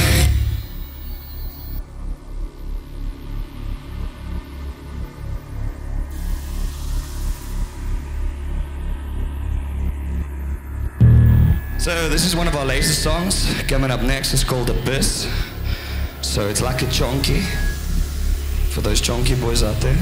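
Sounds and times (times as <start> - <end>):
low pulsing drone: 0.0 - 20.0
loud low hit: 11.0 - 14.2.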